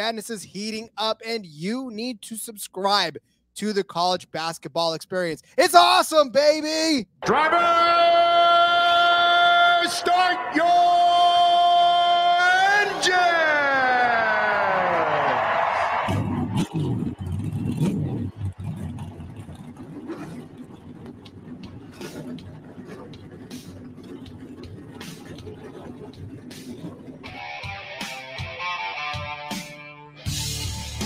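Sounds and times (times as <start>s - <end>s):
race car engines revving: 9.9s - 28.6s
race car passing by: 14.9s - 28.2s
guitar music: 26.2s - 31.0s.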